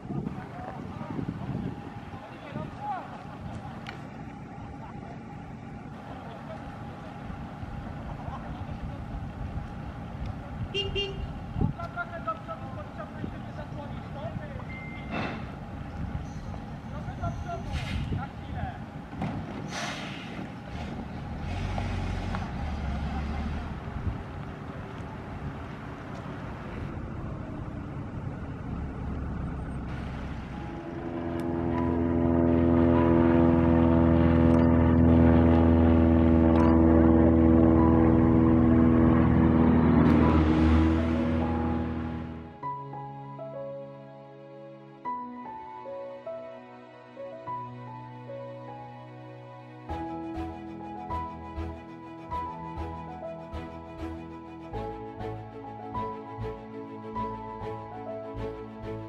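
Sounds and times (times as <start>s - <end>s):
bus diesel engine running: 0.0s - 43.1s, 49.9s - 59.0s
loud steady horn blast: 10.6s - 11.6s, 29.9s - 42.6s.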